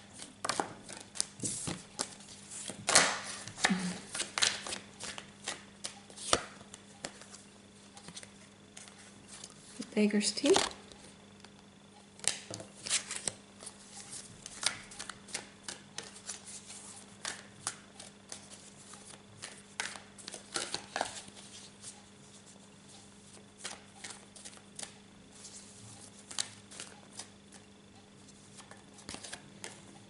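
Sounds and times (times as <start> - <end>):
cards shuffled by hand: 12.2 - 22.0, 23.3 - 27.6, 28.5 - 29.8.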